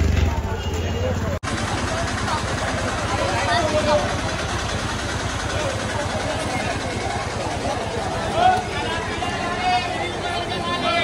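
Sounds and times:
crowd chatter: 0:00.0 - 0:11.0
vehicle engine running: 0:00.0 - 0:11.0.

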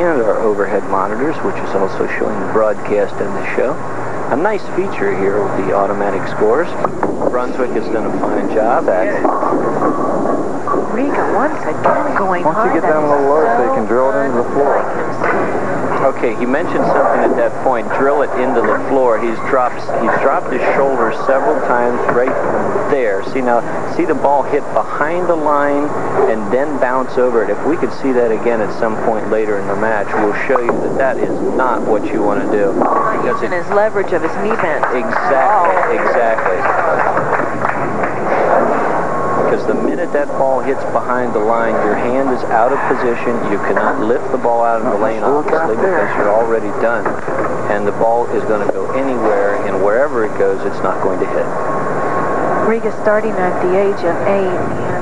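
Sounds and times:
crowd murmur: 0:00.0 - 0:52.7
bowling ball rolling: 0:00.0 - 0:55.0
bowling pins clattering: 0:06.8 - 0:13.9.

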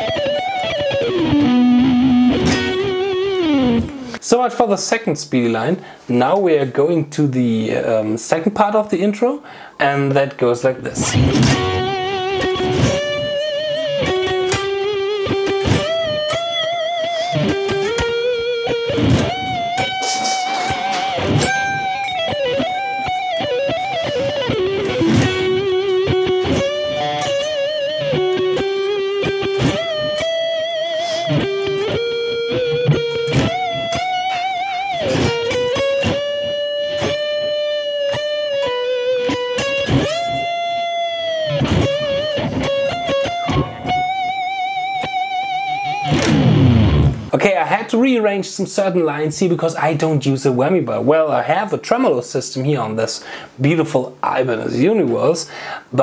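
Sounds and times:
electric guitar lead: 0:00.0 - 0:04.2, 0:10.9 - 0:47.3.

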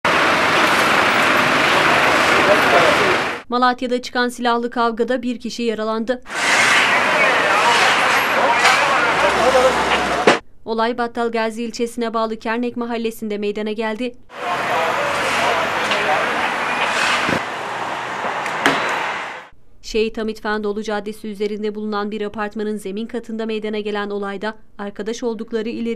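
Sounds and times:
road traffic: 0:00.0 - 0:03.5, 0:06.3 - 0:10.4, 0:14.3 - 0:19.5
car driving slowly past: 0:00.1 - 0:03.4
people talking: 0:02.3 - 0:06.2, 0:06.8 - 0:17.1, 0:19.9 - 0:25.9
sharp knocks: 0:10.2 - 0:10.4, 0:18.2 - 0:19.1.

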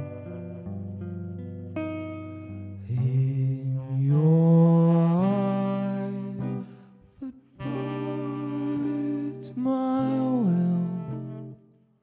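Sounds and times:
guitar chords: 0:00.0 - 0:11.9.

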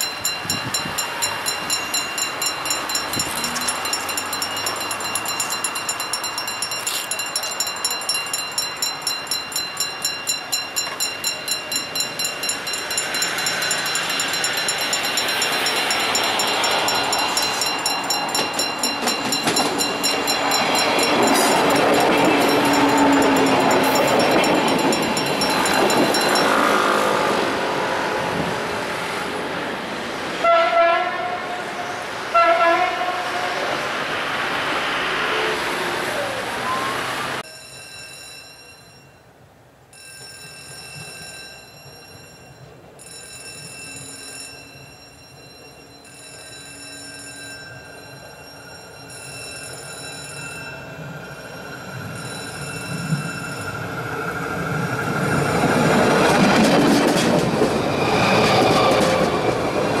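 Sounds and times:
level-crossing warning bell: 0:00.0 - 0:29.2, 0:37.4 - 1:00.0
train passing close by: 0:00.0 - 0:39.1, 0:40.6 - 1:00.0
train horn blasts: 0:30.4 - 0:33.8.

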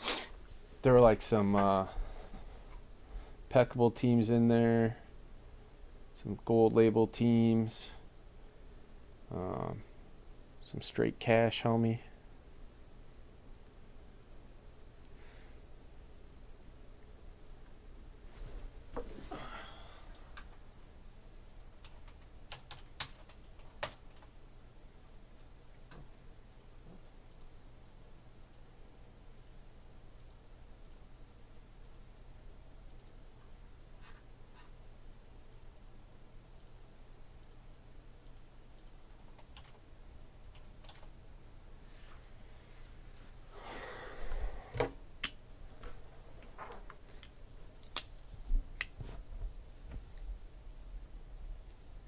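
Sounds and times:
low steady hum: 0:00.2 - 0:52.0
faint small clicks: 0:17.4 - 0:17.8, 0:25.8 - 0:27.5, 0:29.4 - 0:29.6, 0:32.9 - 0:33.5, 0:36.6 - 0:36.8, 0:37.4 - 0:37.6.

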